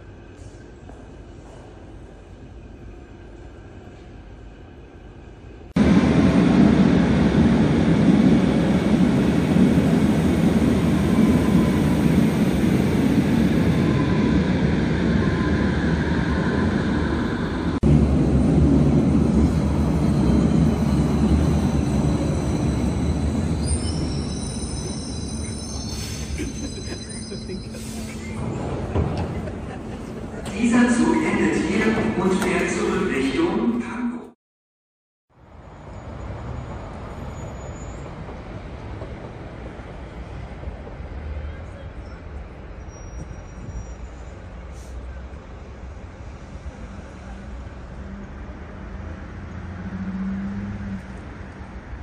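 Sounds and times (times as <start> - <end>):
underground train rumble: 0.0 - 34.1, 35.3 - 52.0
train brakes squealing: 19.9 - 28.4, 35.6 - 38.3, 42.0 - 45.1.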